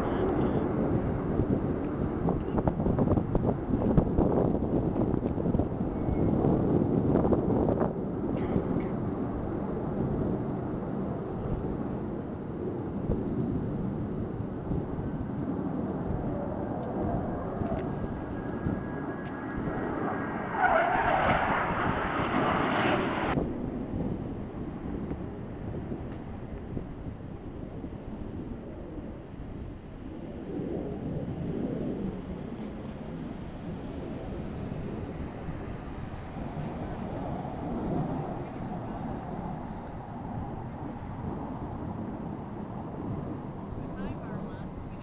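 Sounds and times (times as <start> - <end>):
distant jet roar: 0.0 - 45.0
wind buffeting microphone: 0.0 - 45.0
loud high rush: 16.4 - 23.4.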